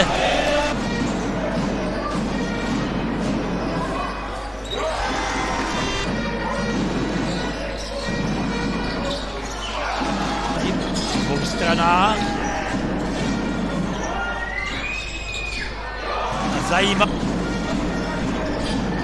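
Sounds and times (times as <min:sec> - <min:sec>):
crowd noise in large hall: 0:00.0 - 0:19.0.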